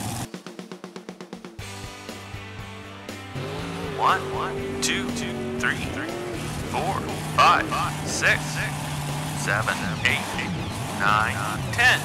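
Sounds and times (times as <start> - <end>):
cartoon truck engine drone: 3.3 - 12.0.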